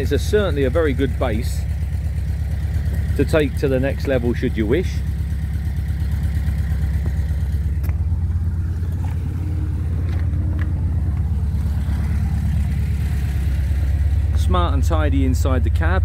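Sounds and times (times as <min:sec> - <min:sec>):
van engine idling: 0:00.0 - 0:16.0.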